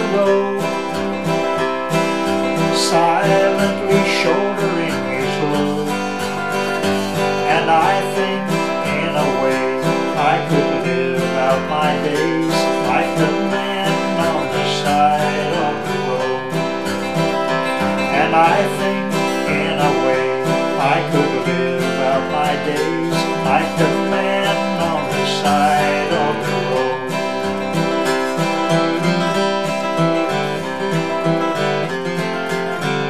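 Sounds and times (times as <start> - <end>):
acoustic guitar strummed and picked: 0.0 - 33.0.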